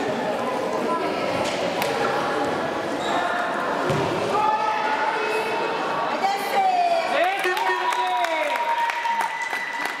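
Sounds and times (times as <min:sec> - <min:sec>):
hubbub of voices in a hall: 0:00.0 - 0:10.0.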